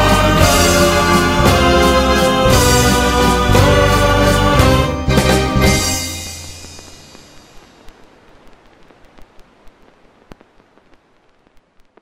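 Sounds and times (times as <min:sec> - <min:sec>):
hiss with crackling clicks: 0:05.8 - 0:12.0.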